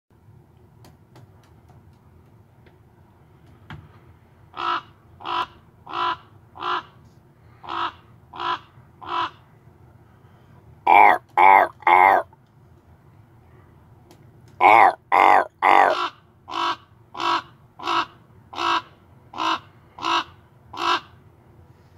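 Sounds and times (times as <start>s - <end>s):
crow cawing: 4.6s - 6.8s, 7.7s - 9.3s, 10.9s - 12.2s, 14.6s - 18.8s, 19.4s - 21.0s.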